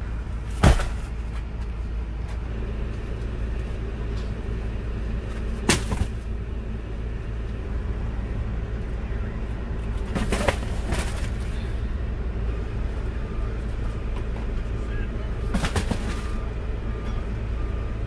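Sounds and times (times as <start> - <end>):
cardboard boxes knocking: 10.1 - 11.3, 15.6 - 16.2.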